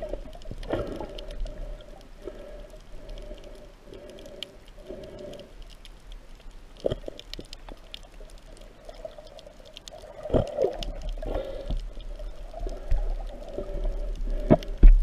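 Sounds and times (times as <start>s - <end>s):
water gurgling underwater: 6.8s - 15.0s.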